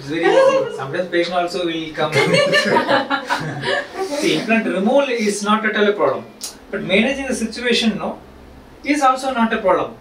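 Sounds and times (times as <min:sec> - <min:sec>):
person chuckling: 0:02.2 - 0:04.4.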